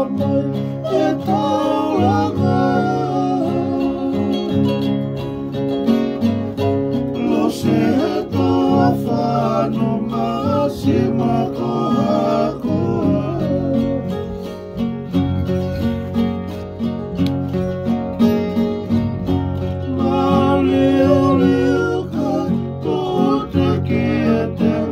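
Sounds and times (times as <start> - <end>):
man singing: 0.0 - 4.9, 7.2 - 14.6, 20.0 - 24.9
ukulele and acoustic guitars strummed: 0.0 - 24.9.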